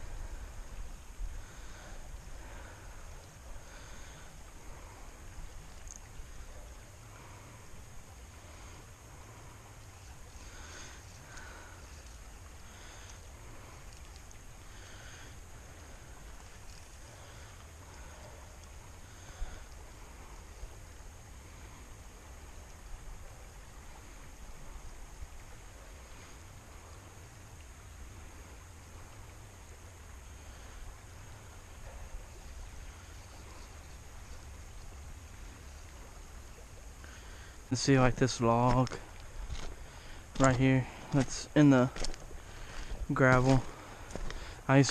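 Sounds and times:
creek water flowing: 0.0 - 44.9.

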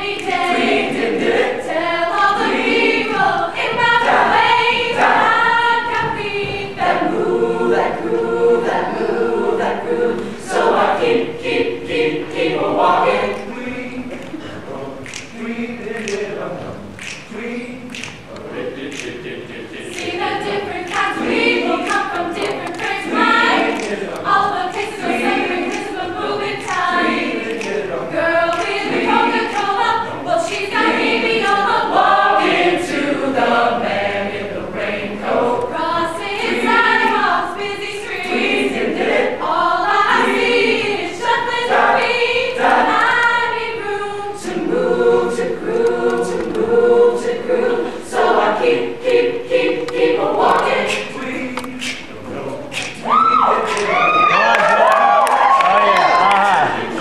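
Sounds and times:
choir singing a cappella: 0.0 - 57.0.

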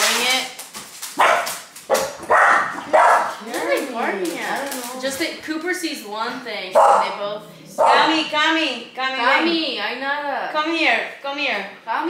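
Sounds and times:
dog barking: 1.2 - 3.4, 6.8 - 8.3.

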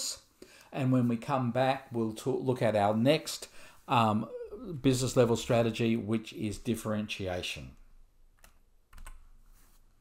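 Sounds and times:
keyboard clicks: 8.4 - 9.2.

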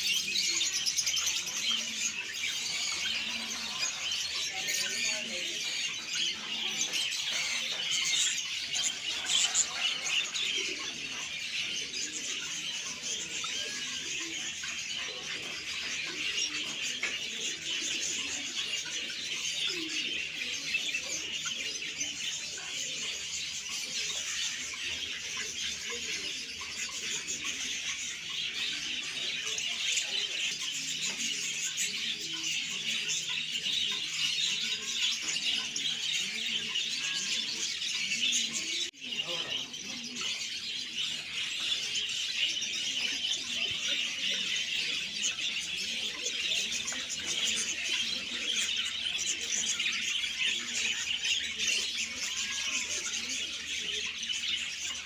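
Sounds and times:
small birds chirping: 0.0 - 55.0.

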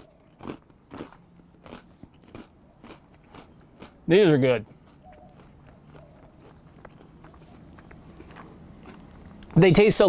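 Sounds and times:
person chewing crunchy cereal: 0.0 - 9.5.

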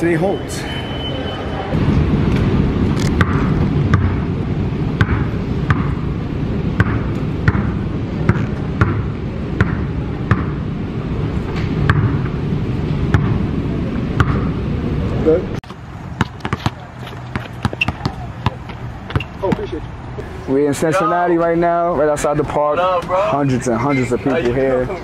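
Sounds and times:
steady low rumble: 1.7 - 19.0
basketball bouncing: 3.2 - 4.3, 5.0 - 6.0, 6.8 - 10.6, 11.9 - 12.3, 13.1 - 13.4, 14.2 - 14.5, 15.7 - 19.7.

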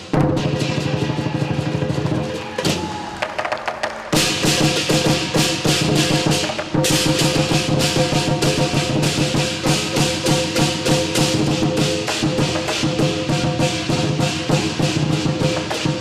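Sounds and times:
cymbals clashing: 0.0 - 3.5, 4.1 - 16.0
drum beating: 0.0 - 16.0.

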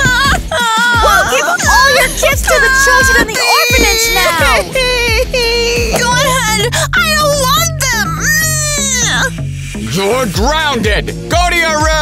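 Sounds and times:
girl crying wail: 0.0 - 9.3
background music: 0.0 - 12.0.

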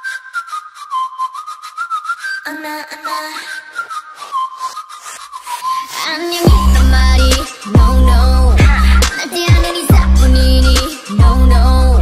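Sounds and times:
sped-up whistled melody: 0.0 - 12.0.

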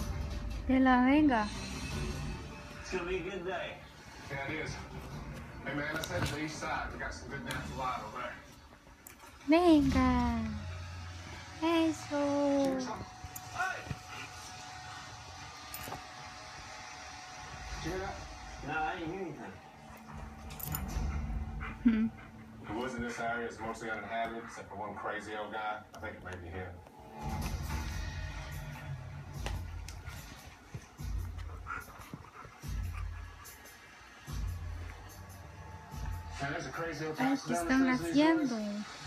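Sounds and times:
television soundtrack music with pulse: 0.0 - 39.0
dogs playing: 1.3 - 38.8.

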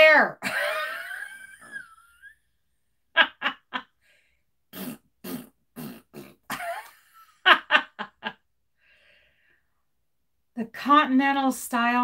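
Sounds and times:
woman laughing: 0.4 - 2.4, 3.1 - 4.0, 6.5 - 8.4.

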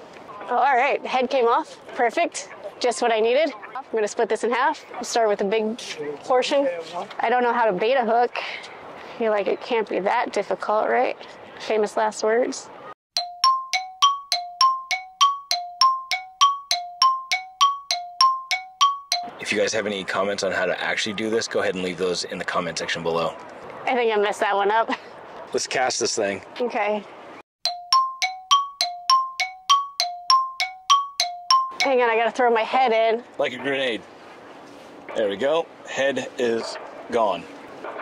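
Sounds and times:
bell-like chime dings: 13.2 - 19.5, 27.7 - 32.0.

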